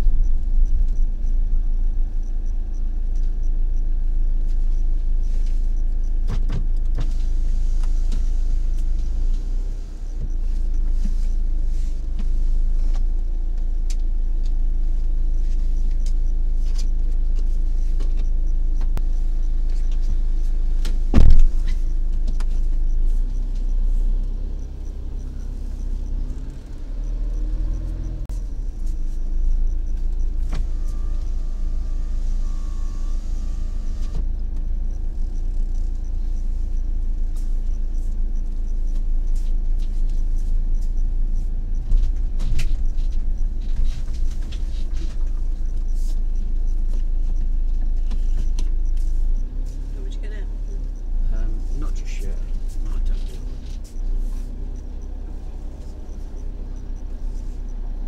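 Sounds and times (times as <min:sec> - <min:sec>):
vehicle engine running: 0:00.0 - 0:58.0
loud thump: 0:21.1 - 0:21.8.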